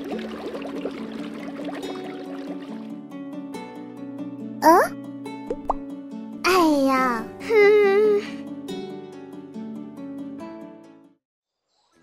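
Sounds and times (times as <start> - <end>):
light background music: 0.0 - 11.2
cartoon bubble bloops: 5.5 - 5.8.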